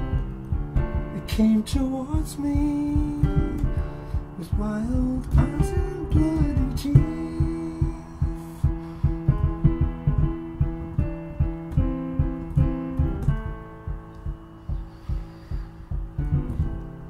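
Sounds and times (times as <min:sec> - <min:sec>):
steady low beat: 0:00.0 - 0:17.0.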